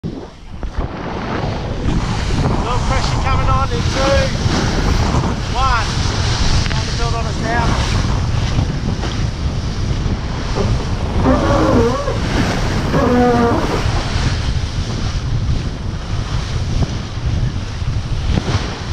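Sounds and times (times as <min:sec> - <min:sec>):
water rushing along hull: 0:00.0 - 0:18.9
wind buffeting microphone: 0:00.0 - 0:18.9.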